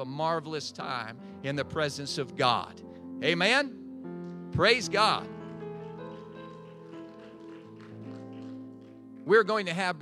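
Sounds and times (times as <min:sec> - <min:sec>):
organ-like keyboard chords: 0:00.0 - 0:09.8.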